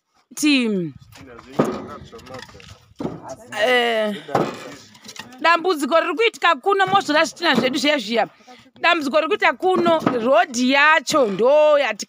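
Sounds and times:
men talking: 1.0s - 5.4s.

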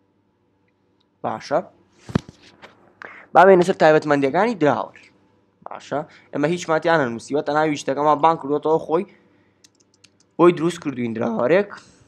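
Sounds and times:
person speaking: 1.2s - 9.1s, 9.7s - 12.0s.

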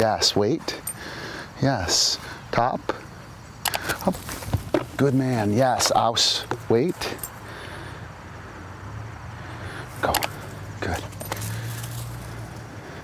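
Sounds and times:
open-air background noise: 0.0s - 13.0s.

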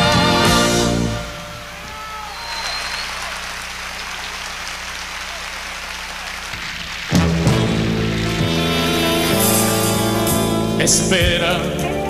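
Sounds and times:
audience applauding and cheering: 0.0s - 10.2s.

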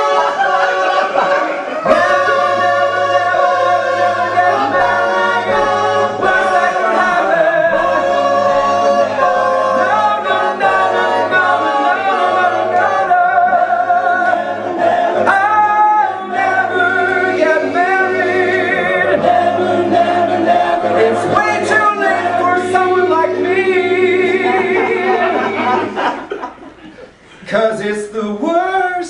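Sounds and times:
vocal group singing in harmony: 0.0s - 27.4s.

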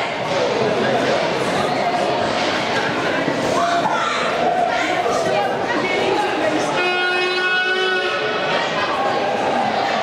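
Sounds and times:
horn blast: 6.7s - 8.6s.

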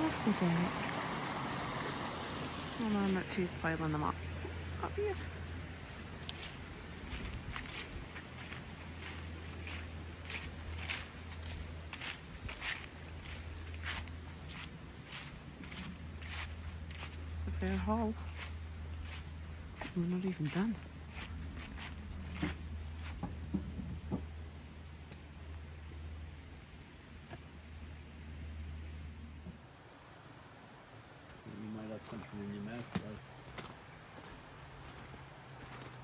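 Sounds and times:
steady low hum: 0.0s - 29.8s
footsteps crunching dry leaves: 5.0s - 23.5s, 32.0s - 36.0s
wooden logs knocking: 22.4s - 24.3s.

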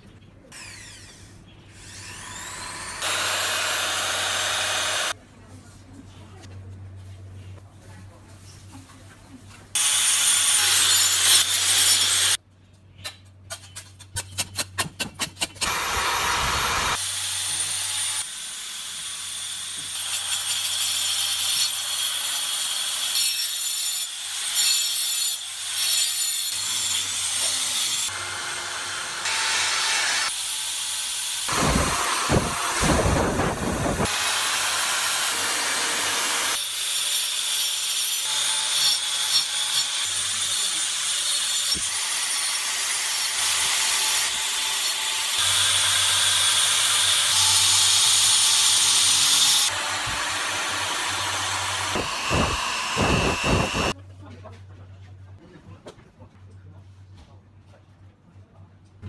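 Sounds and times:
electric drill boring into ice: 2.0s - 5.1s, 15.6s - 18.2s, 45.4s - 54.0s
rotary tool grinding ice: 51.7s - 54.0s.

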